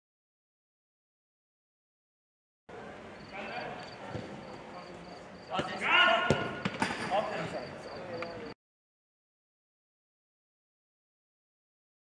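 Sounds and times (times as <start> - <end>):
players shouting: 5.5 - 6.7
football being kicked: 5.6 - 6.9.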